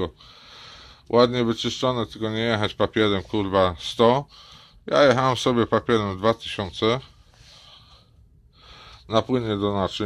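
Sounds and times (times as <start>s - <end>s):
low steady hum: 0.0s - 10.0s
man breathing: 0.1s - 1.1s, 4.3s - 4.9s, 7.1s - 9.1s.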